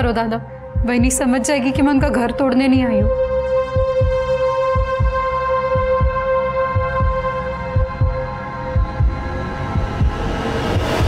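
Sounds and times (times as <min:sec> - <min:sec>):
low heartbeat-like double thump: 0:00.8 - 0:11.0.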